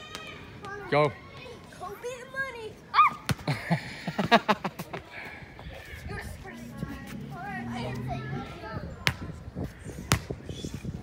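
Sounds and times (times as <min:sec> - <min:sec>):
child shouting: 0:00.0 - 0:03.3.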